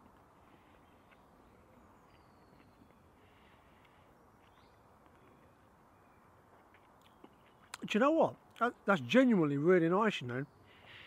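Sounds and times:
distant bird chirps: 0:00.2 - 0:07.9, 0:10.2 - 0:11.0.

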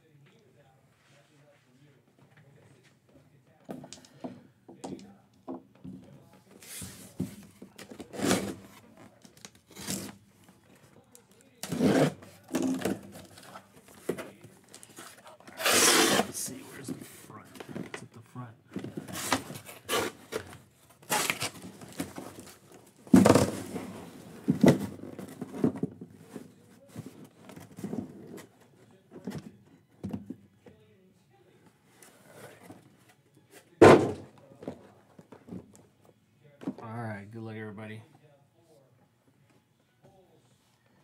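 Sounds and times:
cardboard scraping and rustling: 0:06.5 - 0:10.2, 0:11.6 - 0:18.0, 0:18.8 - 0:28.5
boxes thunking down: 0:11.6 - 0:14.4, 0:18.7 - 0:26.3, 0:33.8 - 0:35.7.

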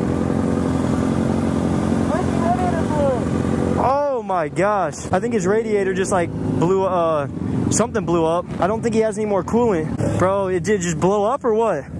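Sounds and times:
motorcycle engine idling: 0:00.0 - 0:11.9.

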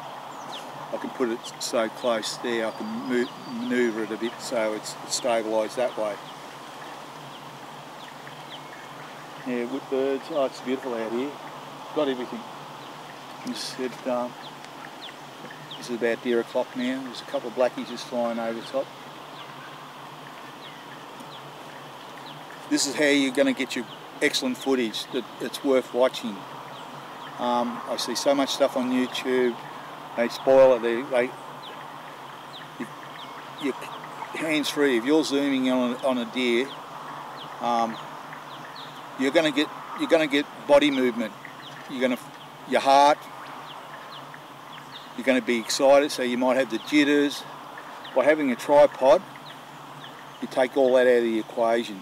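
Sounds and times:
birds chirping: 0:00.0 - 0:52.0
low steady background hiss: 0:00.0 - 0:52.0
man speaking: 0:00.9 - 0:06.2, 0:09.4 - 0:12.5, 0:13.5 - 0:14.4, 0:15.8 - 0:18.9, 0:22.7 - 0:26.4, 0:27.4 - 0:29.6, 0:30.2 - 0:31.4, 0:33.6 - 0:36.7, 0:37.6 - 0:38.0, 0:39.2 - 0:41.3, 0:41.9 - 0:43.2, 0:45.2 - 0:47.5, 0:48.2 - 0:49.2, 0:50.4 - 0:52.0.

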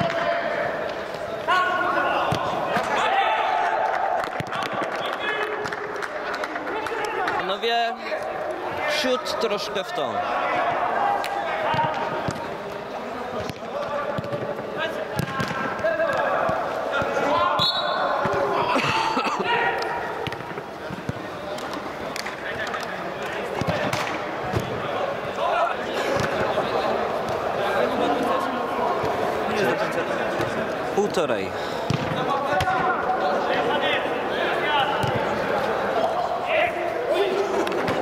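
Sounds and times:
players shouting and calling: 0:00.0 - 0:38.0.

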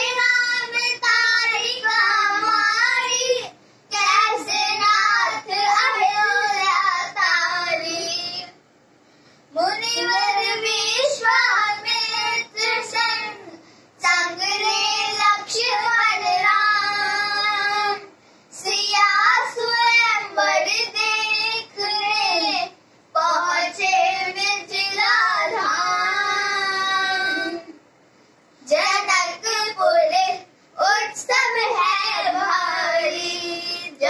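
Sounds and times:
girl singing unaccompanied: 0:00.0 - 0:08.6, 0:09.5 - 0:27.8, 0:28.6 - 0:34.0.

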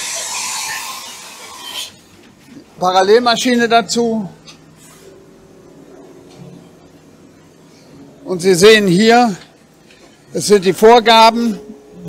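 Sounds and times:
faint machine whine: 0:00.0 - 0:12.0.

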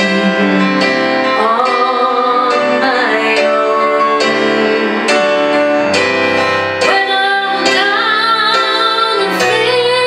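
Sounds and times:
woman singing a slow ballad: 0:00.0 - 0:05.6, 0:06.4 - 0:10.0
musical backing: 0:00.0 - 0:10.0.

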